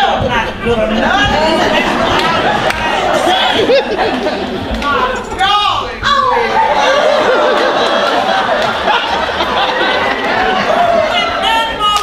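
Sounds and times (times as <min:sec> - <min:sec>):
people laughing and chuckling: 0:00.0 - 0:05.6, 0:06.2 - 0:11.8.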